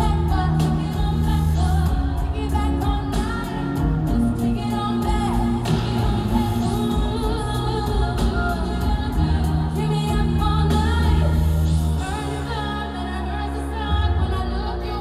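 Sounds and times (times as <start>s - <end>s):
live pop band music: 0.0s - 15.0s
woman singing into microphone: 0.0s - 15.0s.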